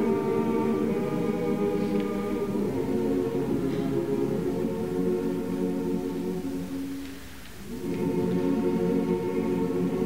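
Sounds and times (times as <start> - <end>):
slow choral singing: 0.0 - 10.0.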